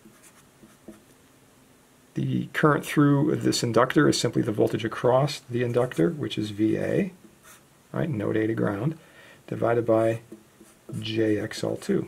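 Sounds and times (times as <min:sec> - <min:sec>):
marker scratching strokes: 0:00.0 - 0:01.0, 0:07.3 - 0:07.7, 0:10.3 - 0:11.6.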